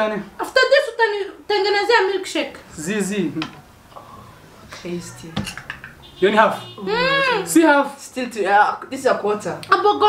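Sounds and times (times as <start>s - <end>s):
tableware clinking: 5.3s - 6.0s.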